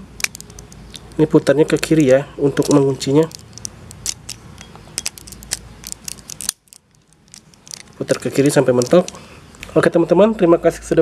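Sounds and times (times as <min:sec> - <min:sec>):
plastic parts clicking and scraping: 0:00.2 - 0:09.2.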